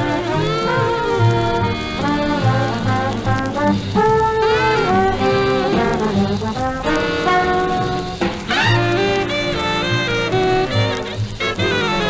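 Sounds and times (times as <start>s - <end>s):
swing big band on old radio: 0.0s - 12.0s.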